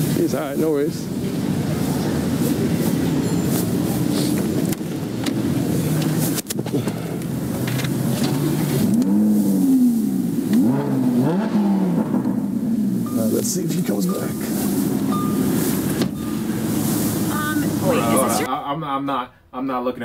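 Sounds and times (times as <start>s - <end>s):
car engine revving: 0.0s - 18.5s.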